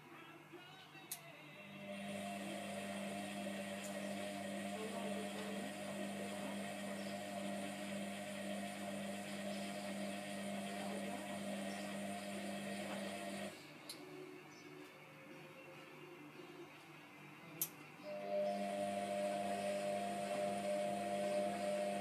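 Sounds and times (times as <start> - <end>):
washing machine drum motor humming: 1.9 - 13.5, 18.1 - 22.0.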